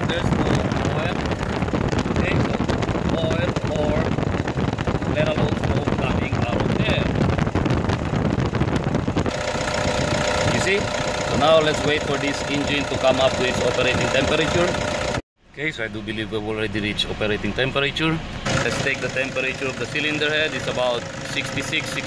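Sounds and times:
diesel engine idling with clatter: 0:00.0 - 0:22.0.

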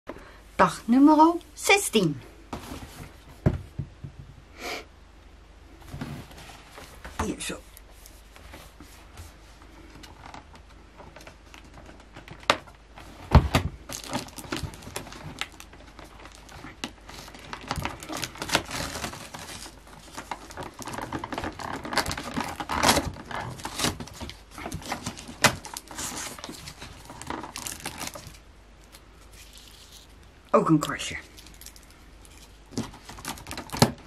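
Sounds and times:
paper crinkling and tearing: 0:13.8 - 0:30.2, 0:30.8 - 0:34.0.

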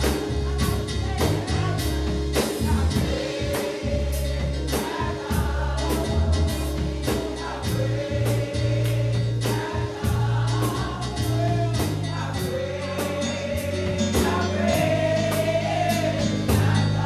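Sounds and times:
drum kit with cymbals: 0:00.0 - 0:17.0
keyboard bass notes: 0:00.0 - 0:17.0
voices singing together: 0:00.0 - 0:17.0.

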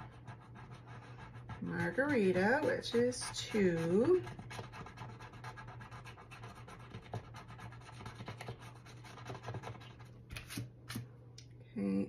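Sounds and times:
scratch-off coating being scraped: 0:00.0 - 0:10.7.

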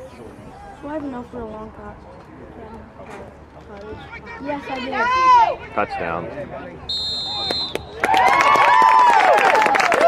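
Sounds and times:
crowd cheering and yelling: 0:07.3 - 0:10.0
people clapping: 0:07.4 - 0:10.0.

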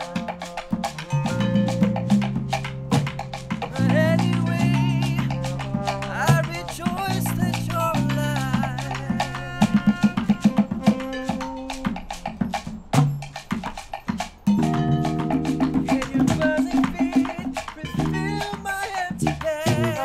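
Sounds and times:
horns holding a chord: 0:00.0 - 0:12.3
hand drum and shaker: 0:00.0 - 0:20.0
latin band playing: 0:00.0 - 0:20.0
bass line: 0:01.0 - 0:10.6.

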